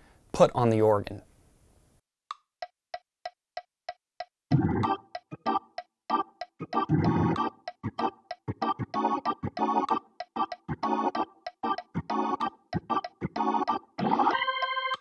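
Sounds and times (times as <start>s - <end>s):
organ chord stabs: 4.5s - 15.0s.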